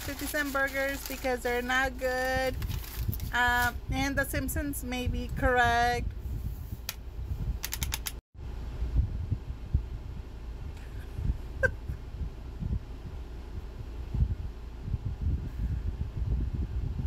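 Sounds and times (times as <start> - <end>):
sharp clicks: 7.6 - 8.2.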